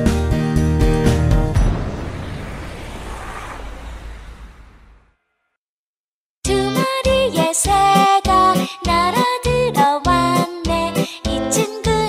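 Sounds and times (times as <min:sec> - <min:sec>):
cartoon bus driving away: 0:00.8 - 0:05.5
children's song: 0:06.4 - 0:12.0.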